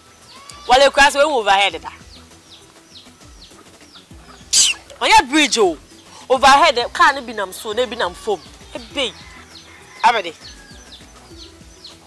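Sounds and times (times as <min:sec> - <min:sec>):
small bird chirping: 0:01.6 - 0:12.0
loud hissing burst: 0:04.5 - 0:04.9.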